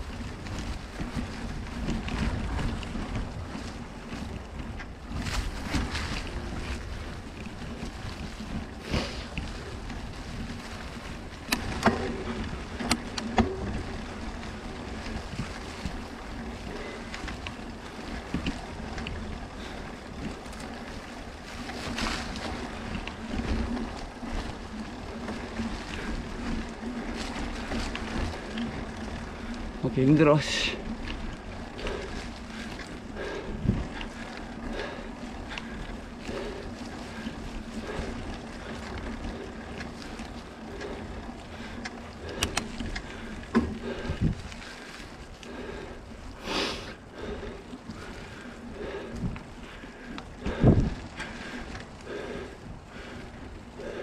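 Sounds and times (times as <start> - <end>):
bike tyres on dry leaves and dirt: 0.0 - 54.0
wind rushing on microphone: 0.0 - 54.0.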